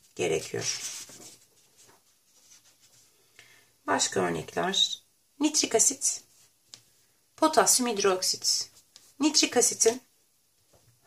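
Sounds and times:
paper rubbing and rustling: 0:00.0 - 0:03.1.

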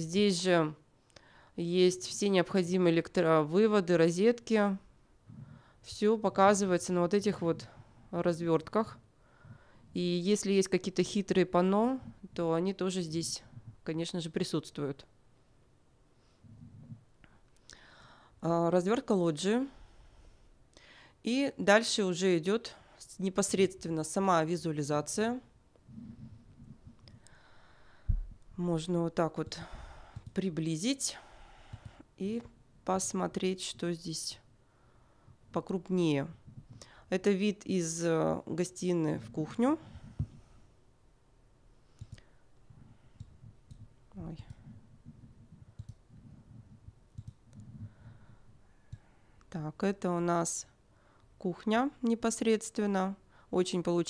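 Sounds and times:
soft intake of breath: 0:09.2 - 0:09.9, 0:17.7 - 0:18.4, 0:27.2 - 0:28.2, 0:29.6 - 0:30.3, 0:31.2 - 0:32.1
computer mouse clicks: 0:30.1 - 0:30.4, 0:31.7 - 0:32.0, 0:42.0 - 0:42.3, 0:43.2 - 0:44.8, 0:45.7 - 0:46.0, 0:47.1 - 0:47.8, 0:48.9 - 0:49.1.

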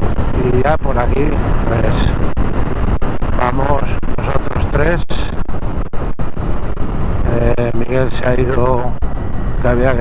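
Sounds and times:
motorcycle engine rumble: 0:00.0 - 0:10.0
wind rushing over microphone: 0:00.0 - 0:10.0.

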